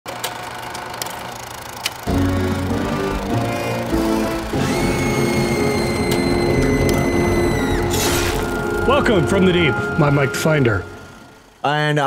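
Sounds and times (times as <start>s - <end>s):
film projector whirring: 0.1s - 9.2s.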